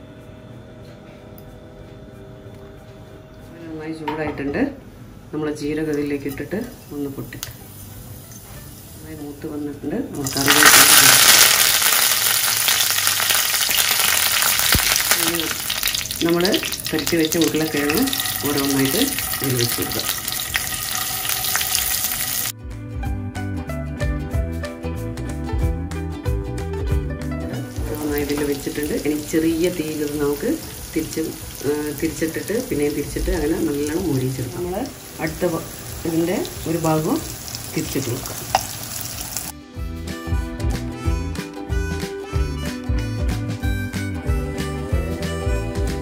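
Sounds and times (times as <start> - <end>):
leaves sizzling in hot oil: 6.3 - 22.5, 27.7 - 39.6
person talking: 15.1 - 20.2, 27.4 - 38.5.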